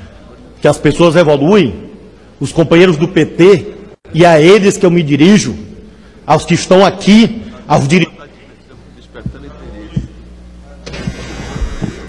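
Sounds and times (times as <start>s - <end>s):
faint background murmur: 0.0s - 0.6s, 7.4s - 12.0s
low steady room hum: 0.0s - 12.0s.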